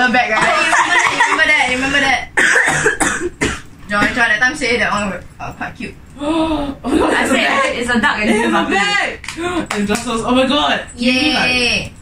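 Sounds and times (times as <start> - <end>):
person coughing: 2.4 - 3.7.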